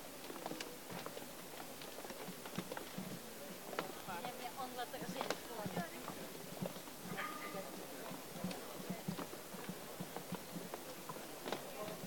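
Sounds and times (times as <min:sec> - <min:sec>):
crowd footsteps on hard floor: 0:05.0 - 0:12.0.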